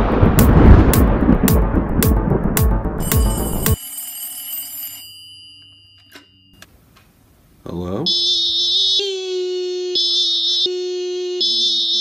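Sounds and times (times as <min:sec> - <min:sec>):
desk telephone ringing: 0:03.0 - 0:06.7.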